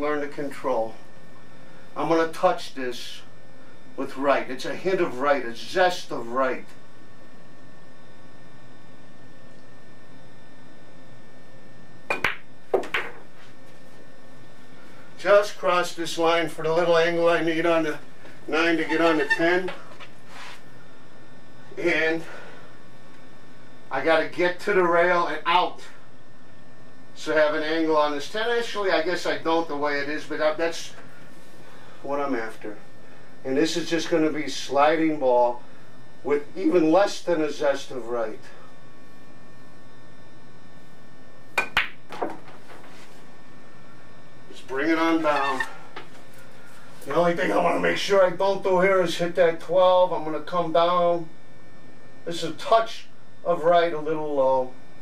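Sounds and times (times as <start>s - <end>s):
dull knocks of balls: 12.1s - 13.3s, 41.6s - 42.6s
pool cue striking ball: 12.1s - 13.3s, 41.5s - 42.6s.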